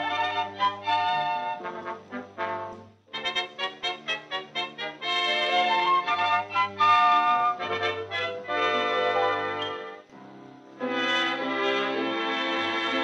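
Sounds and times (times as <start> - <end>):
orchestral music with brass: 0.0 - 13.0.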